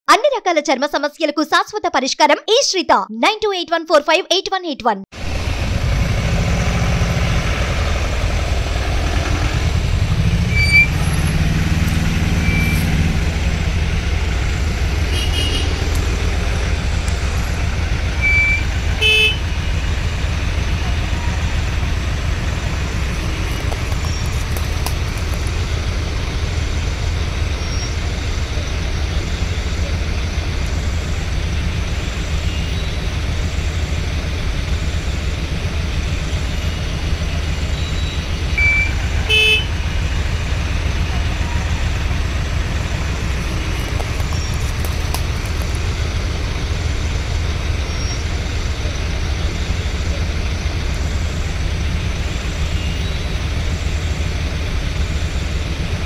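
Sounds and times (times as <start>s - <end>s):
traffic engine rumble: 5.1s - 56.0s
car horn toots: 15.0s - 16.0s, 18.2s - 19.8s, 38.6s - 39.9s.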